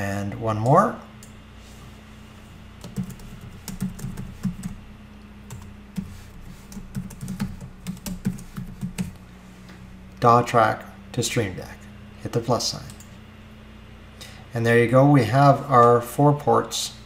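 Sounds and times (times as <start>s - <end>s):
computer keyboard typing: 2.8s - 4.8s, 5.5s - 9.2s.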